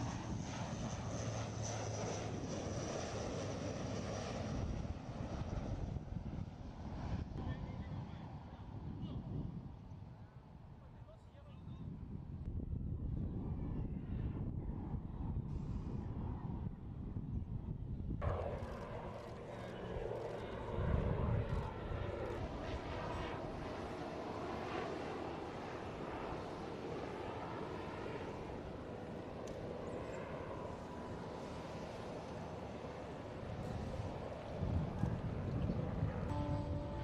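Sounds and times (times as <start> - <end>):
aircraft engine rumble: 0.0 - 37.0.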